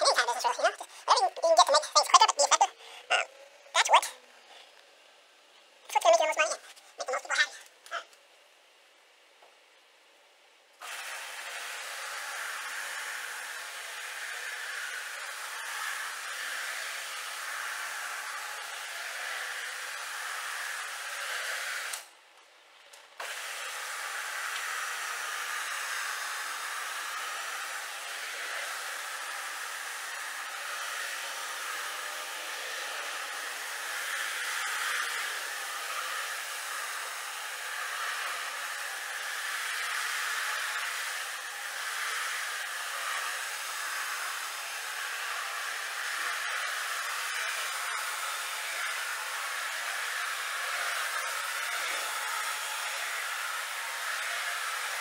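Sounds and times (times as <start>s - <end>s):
floor machine motor humming: 10.8s - 22.0s, 23.2s - 55.0s.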